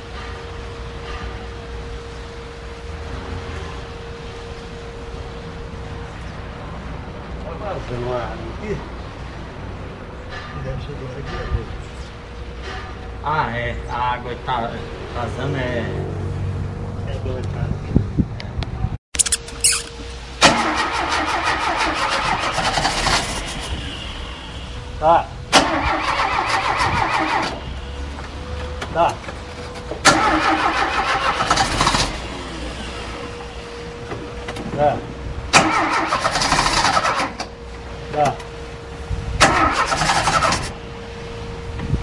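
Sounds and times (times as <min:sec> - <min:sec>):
starter motor cranking engine: 0:19.2 - 0:23.7, 0:25.6 - 0:27.6, 0:30.0 - 0:32.2, 0:35.6 - 0:37.5, 0:39.4 - 0:40.7.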